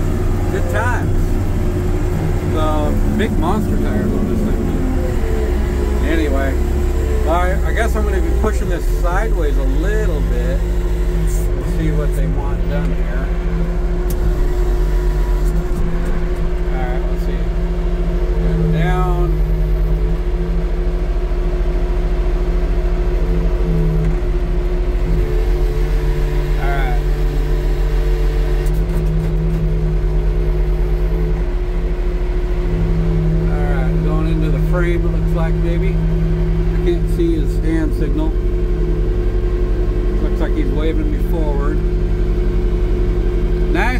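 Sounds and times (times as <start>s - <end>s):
forklift engine idling: 0.0s - 43.9s.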